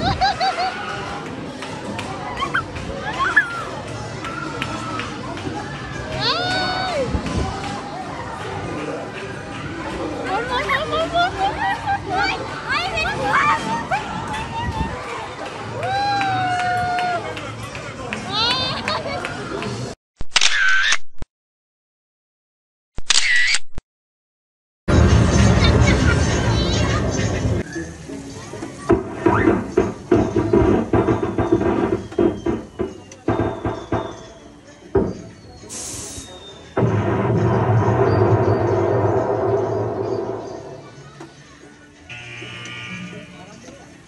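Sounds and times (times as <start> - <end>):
camera shutter sound effect: 20.2 - 21.2, 23.0 - 23.8.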